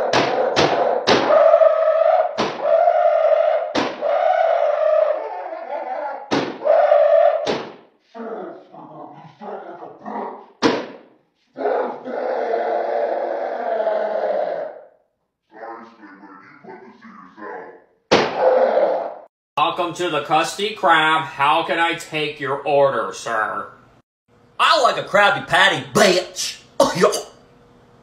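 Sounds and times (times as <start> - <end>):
long high-pitched yell: 0.0 - 7.4
pitched-up comic character voice: 26.0 - 27.3.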